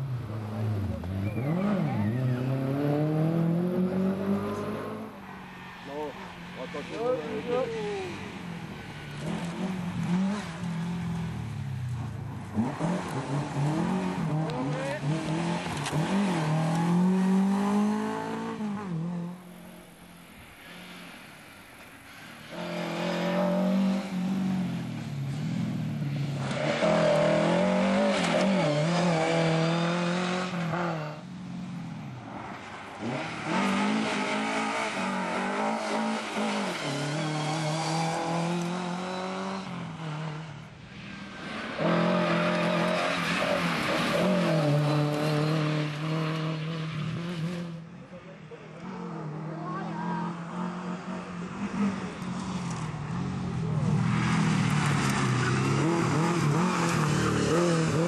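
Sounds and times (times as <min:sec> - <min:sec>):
rally car engines revving: 0:00.0 - 0:21.2, 0:21.8 - 0:58.0.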